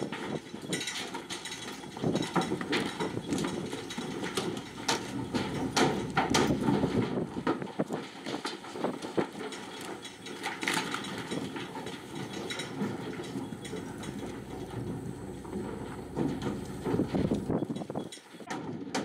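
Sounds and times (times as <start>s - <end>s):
hooves knocking on metal ramp: 0.0s - 19.0s.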